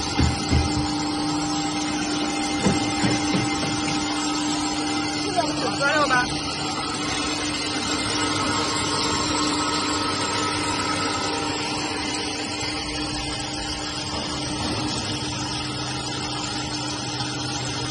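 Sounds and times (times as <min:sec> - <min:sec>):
machine drone: 0:00.0 - 0:17.9.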